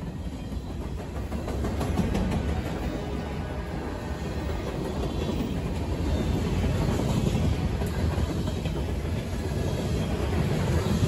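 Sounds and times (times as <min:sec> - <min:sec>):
steel train wheels on rails: 0:00.0 - 0:11.0.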